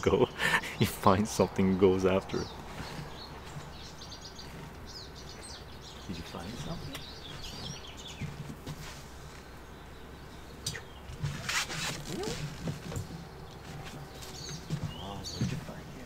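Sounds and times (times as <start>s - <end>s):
small birds chirping: 0.0s - 16.0s
brief rustling: 10.6s - 15.8s.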